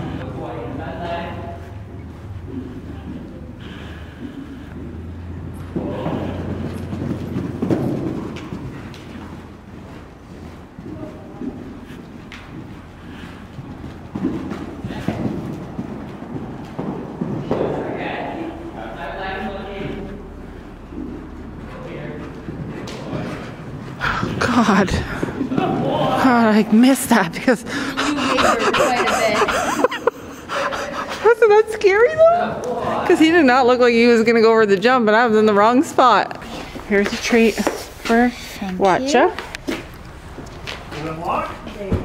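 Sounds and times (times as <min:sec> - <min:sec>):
horse hoofbeats on dirt: 0:01.3 - 0:29.8, 0:33.0 - 0:42.0
indistinct talk: 0:23.1 - 0:34.2.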